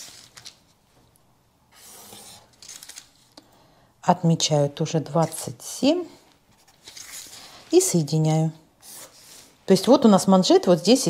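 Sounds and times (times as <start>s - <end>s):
ruler sliding across paper: 1.7s - 2.5s.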